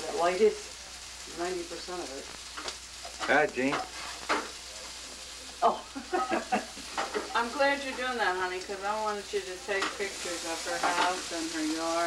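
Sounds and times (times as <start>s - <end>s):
background hiss: 0.0s - 12.0s
person laughing: 5.9s - 6.9s.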